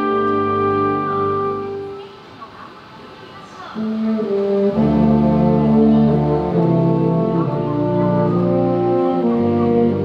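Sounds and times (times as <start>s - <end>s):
low brass: 0.0s - 2.1s, 3.8s - 10.0s
wind band playing: 0.0s - 2.3s, 3.7s - 10.0s.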